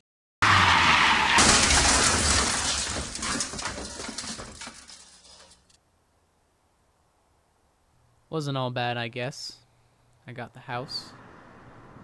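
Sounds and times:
loud crash: 0:00.4 - 0:05.7
debris ticking: 0:01.4 - 0:05.8.

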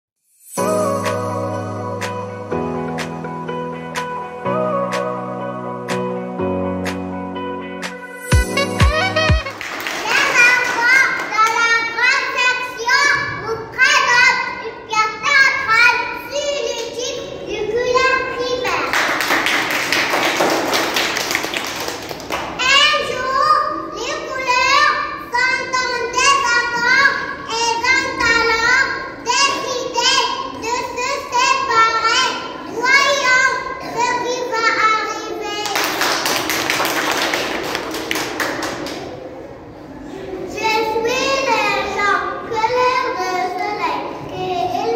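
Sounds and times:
audience clapping: 0:08.8 - 0:11.6, 0:18.9 - 0:22.6, 0:35.6 - 0:39.1
child's voice: 0:09.0 - 0:19.1, 0:22.6 - 0:36.1, 0:40.0 - 0:44.9.

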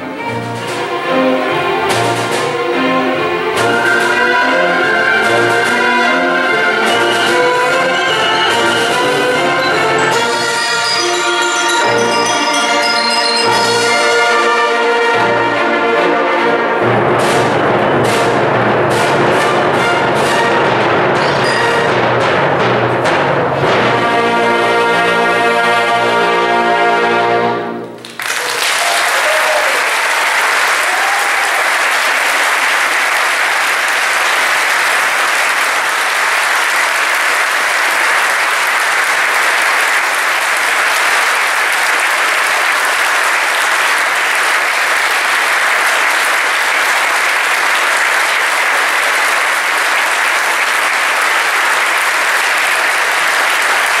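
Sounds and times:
audience applauding: 0:00.0 - 0:16.5, 0:27.8 - 0:54.0.

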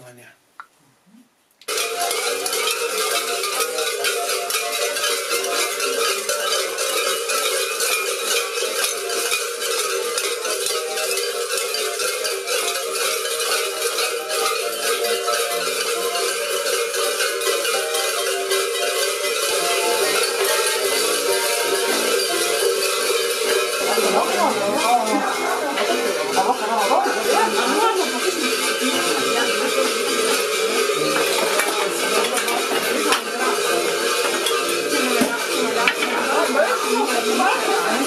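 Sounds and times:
large cowbells clanging: 0:01.7 - 0:38.0.

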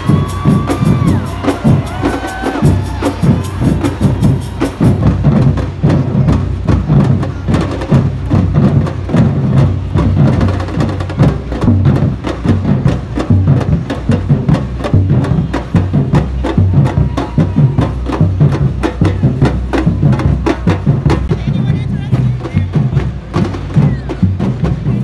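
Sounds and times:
large drums beaten fast: 0:00.0 - 0:25.0.

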